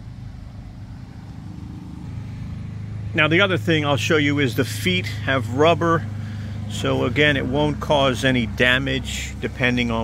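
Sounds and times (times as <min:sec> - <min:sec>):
low engine-like rumble: 0:00.0 - 0:10.0.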